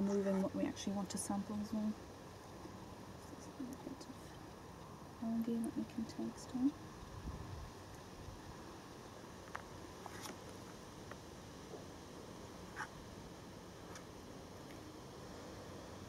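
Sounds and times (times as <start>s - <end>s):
background hiss: 0.0s - 16.0s.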